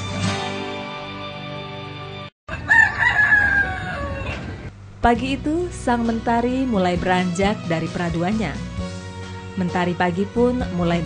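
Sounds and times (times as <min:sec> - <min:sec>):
rooster crowing: 0:02.5 - 0:04.7.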